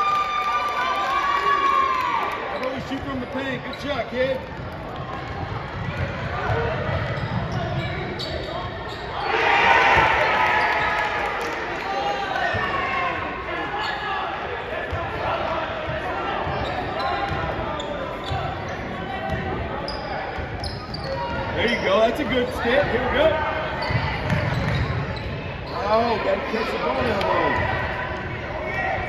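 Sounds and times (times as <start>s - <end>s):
voices of players and spectators: 0.0s - 29.0s.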